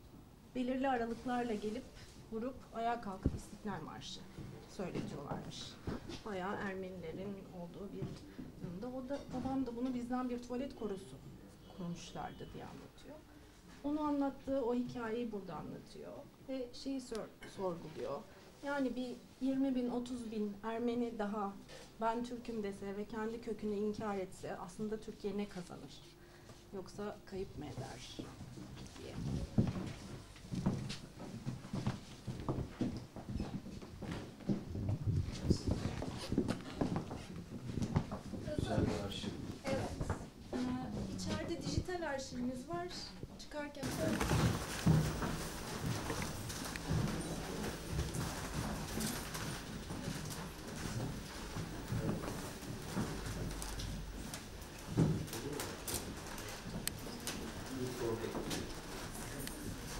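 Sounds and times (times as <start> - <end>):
footsteps of shoes on floor: 28.2 - 41.8, 43.8 - 59.9.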